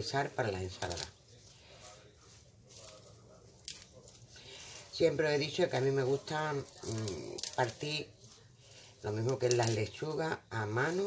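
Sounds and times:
leaves rustling and crackling: 0:00.0 - 0:11.0.

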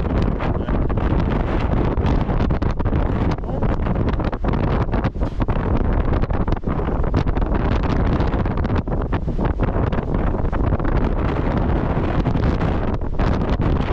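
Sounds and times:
wind buffeting microphone: 0:00.0 - 0:13.9.

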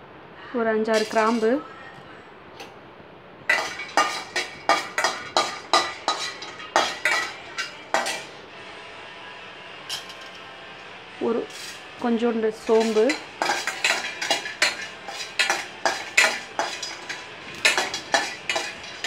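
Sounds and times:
spoon clinking against metal pan: 0:00.9 - 0:01.6, 0:03.5 - 0:08.3, 0:12.6 - 0:19.0.

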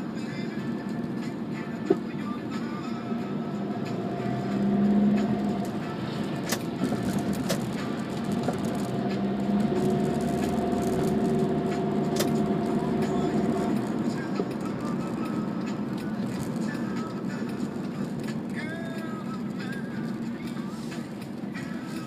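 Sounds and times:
car engine and tyre hum: 0:00.0 - 0:22.0
sharp clicks: 0:12.1 - 0:12.6.

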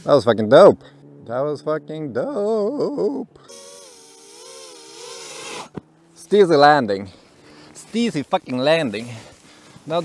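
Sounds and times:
drone motors whining: 0:03.4 - 0:06.3.

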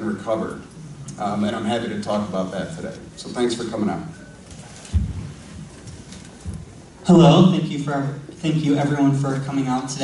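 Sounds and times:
microphone handling thump: 0:04.9 - 0:05.7.

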